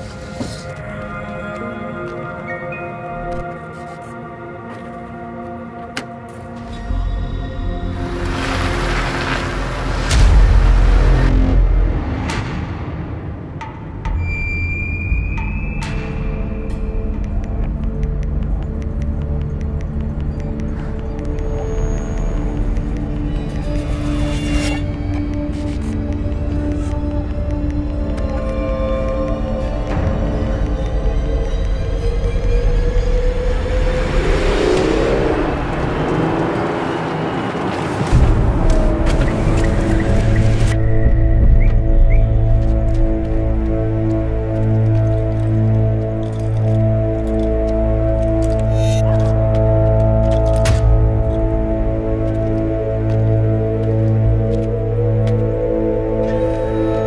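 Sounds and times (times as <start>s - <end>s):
tense film score drone: 0.0s - 57.0s
road noise: 3.3s - 14.2s, 15.8s - 57.0s
car approaching: 33.3s - 40.7s.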